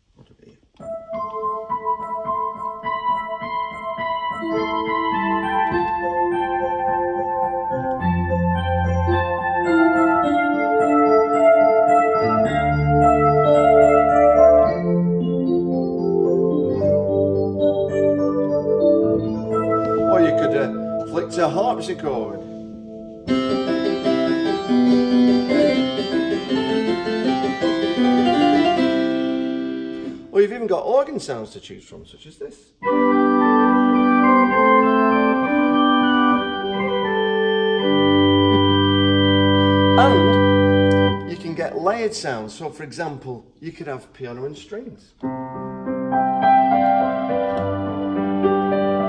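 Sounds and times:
piano and strings chords: 0.8s - 30.4s, 32.8s - 42.4s, 45.2s - 49.0s
harpsichord melody: 0.8s - 30.5s, 32.8s - 42.4s, 45.2s - 49.0s.

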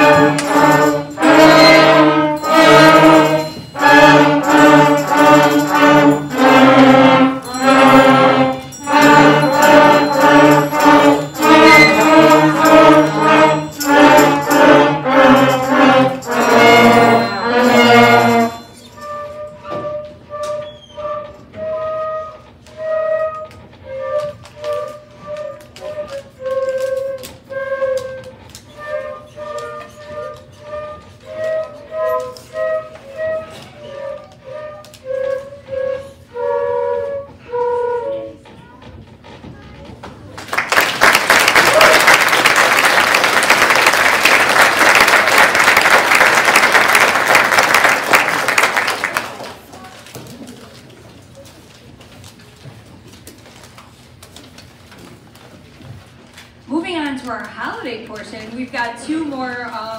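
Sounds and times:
flutes playing melody: 0.0s - 38.5s.

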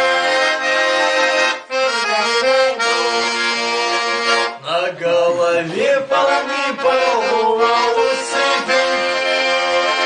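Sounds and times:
button accordion playing: 0.0s - 10.0s
man singing: 1.8s - 10.0s.

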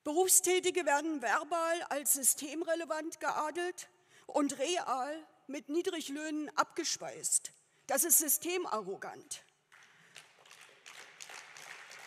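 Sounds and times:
scattered applause: 9.7s - 12.0s.

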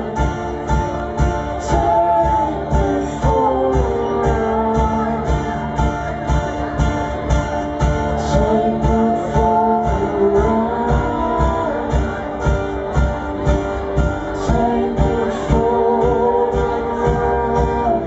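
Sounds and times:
indie band instrumental: 0.0s - 18.0s.

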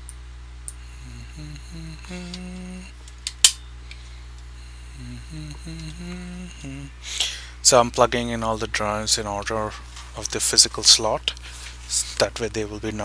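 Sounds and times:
steady low hum: 0.0s - 13.0s
man humming a tune: 0.7s - 3.0s, 4.6s - 7.5s.

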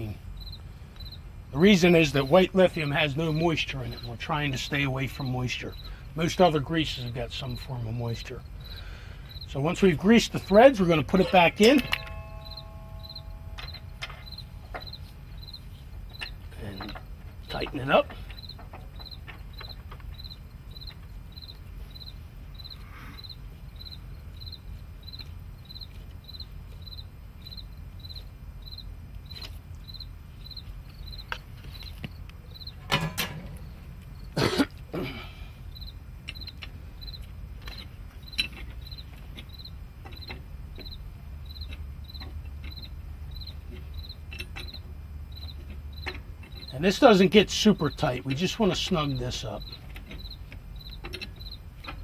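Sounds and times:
cricket chirping: 0.0s - 52.0s
low hum: 2.6s - 46.7s
metal knocks and clicks: 10.3s - 21.1s, 32.6s - 33.8s, 37.6s - 47.0s, 47.9s - 52.0s.

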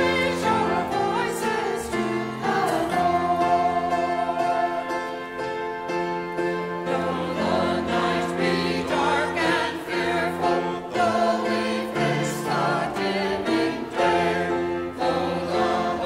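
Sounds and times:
choir singing a hymn: 0.0s - 5.6s, 6.3s - 16.0s.

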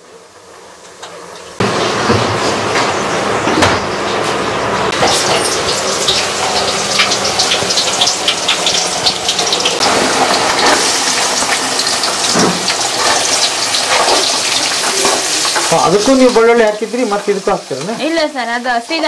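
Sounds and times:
onions sizzling in oil: 0.0s - 19.0s
pot bubbling: 1.4s - 18.1s.

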